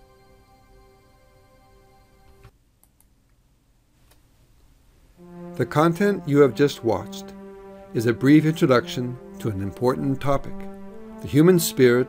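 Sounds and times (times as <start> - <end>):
faint music of sustained chords: 0.0 - 2.5, 5.2 - 12.0.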